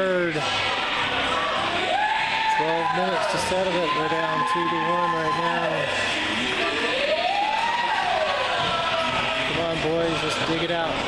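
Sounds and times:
ice rink background noise: 0.0 - 11.0.

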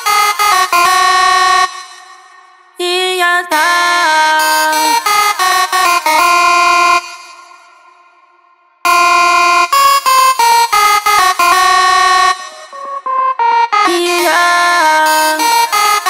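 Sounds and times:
electronic dance music synth lead: 4.4 - 7.9, 8.9 - 16.0.

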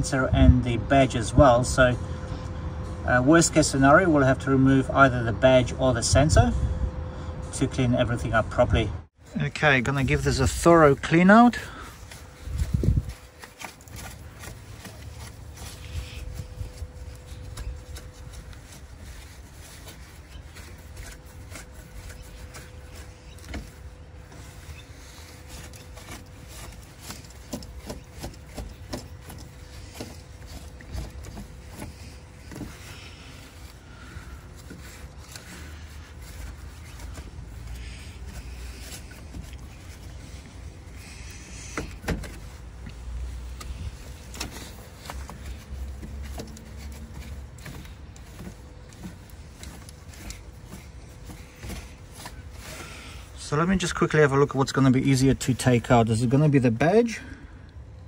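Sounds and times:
cloth rag rubbing on plastic: 9.6 - 56.8.

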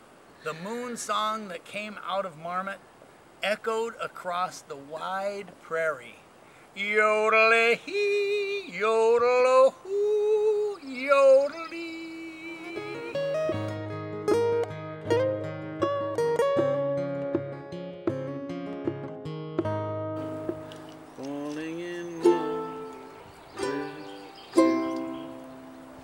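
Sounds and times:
ukulele strummed chords: 12.0 - 26.0
ukulele plucked notes: 12.4 - 26.0.

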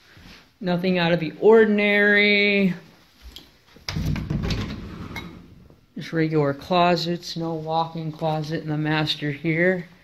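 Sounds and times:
closet door rattling slide: 3.9 - 5.6.

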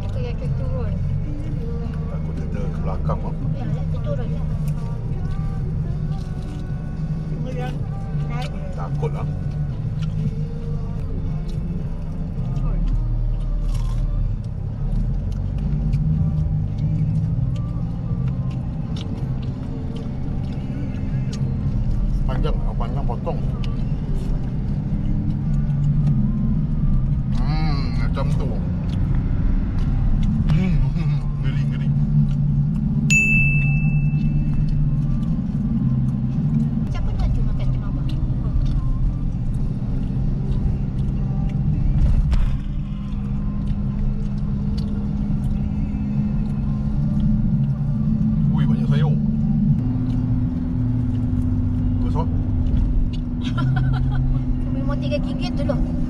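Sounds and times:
car engine and road noise: 0.0 - 56.0
short high-pitched beep: 33.1 - 34.5.

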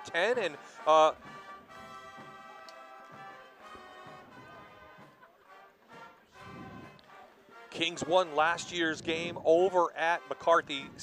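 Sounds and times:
faint brass music: 0.0 - 11.0.

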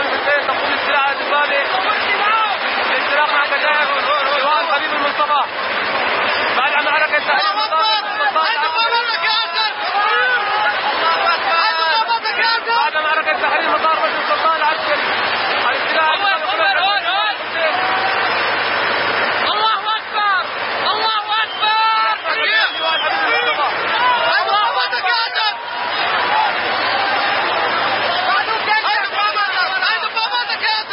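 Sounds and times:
men talking and shouting: 0.0 - 30.9.

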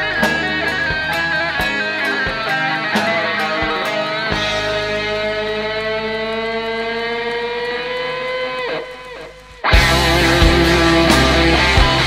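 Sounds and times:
electric guitar sustained note: 0.0 - 12.0.

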